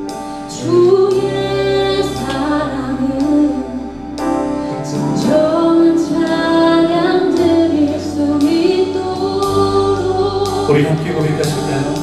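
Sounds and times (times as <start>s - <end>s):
woman singing lead vocal: 0.0s - 11.7s
drum kit: 0.0s - 12.0s
electric bass: 0.0s - 12.0s.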